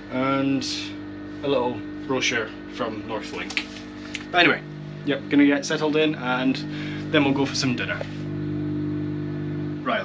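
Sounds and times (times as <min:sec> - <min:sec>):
held low tones: 0:00.0 - 0:10.0
machinery low hum: 0:00.0 - 0:10.0
man speaking: 0:00.1 - 0:08.2.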